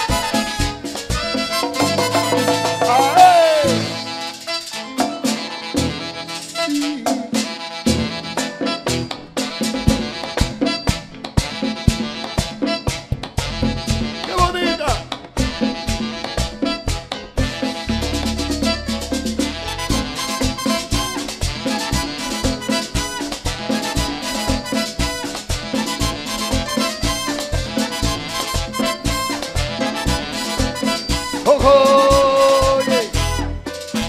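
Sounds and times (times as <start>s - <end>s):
fast conga percussion: 0.0s - 34.0s
pitched instruments: 0.0s - 34.0s.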